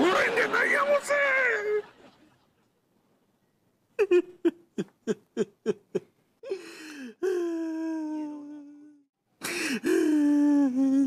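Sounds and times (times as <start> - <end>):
sharp gasping sob: 6.4 - 11.0.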